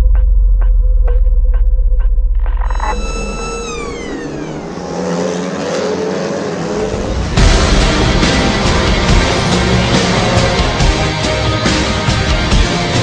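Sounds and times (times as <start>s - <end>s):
race car passing at speed: 3.6s - 12.2s
background music with beat: 7.4s - 13.0s.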